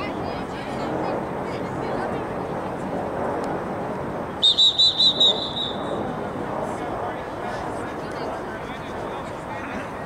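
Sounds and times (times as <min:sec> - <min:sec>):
outdoor background noise: 0:00.0 - 0:10.0
referee's whistle blasts: 0:04.4 - 0:05.9.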